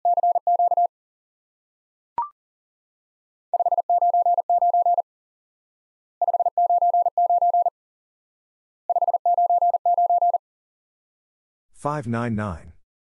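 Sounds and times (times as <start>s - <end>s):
morse code electronic tone: 3.6s - 5.0s, 6.2s - 7.7s, 8.9s - 10.4s.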